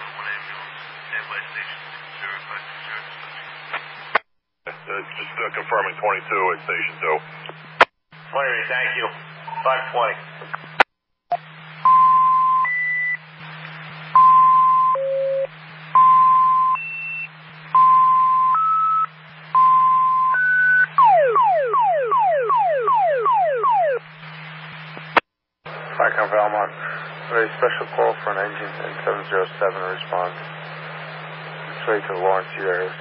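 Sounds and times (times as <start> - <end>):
dispatcher's voice on radio: 0.0 - 3.5, 4.7 - 7.6, 8.2 - 10.8, 25.7 - 30.9, 31.6 - 33.0
low steady hum: 0.0 - 33.0.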